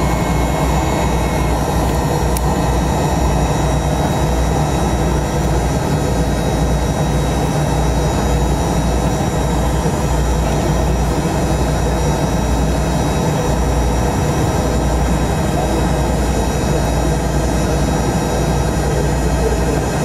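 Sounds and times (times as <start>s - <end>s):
high turbine whine: 0.0s - 20.0s
jet engines deep rumble: 0.0s - 20.0s.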